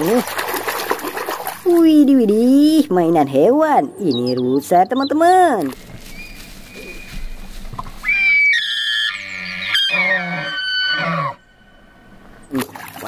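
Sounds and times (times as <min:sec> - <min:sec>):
elk bugling: 0:05.8 - 0:12.5.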